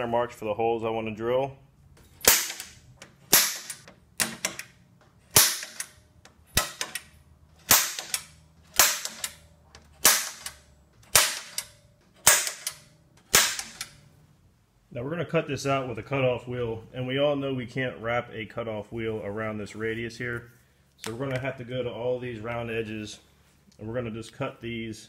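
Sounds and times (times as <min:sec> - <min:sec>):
center punch snapping on steel sheet: 0:02.2 - 0:04.7, 0:05.3 - 0:05.9, 0:07.7 - 0:09.4, 0:10.0 - 0:13.9.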